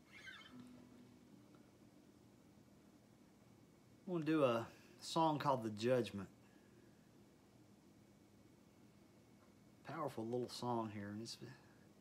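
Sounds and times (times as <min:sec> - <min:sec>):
faint high squeak: 0:00.0 - 0:01.0.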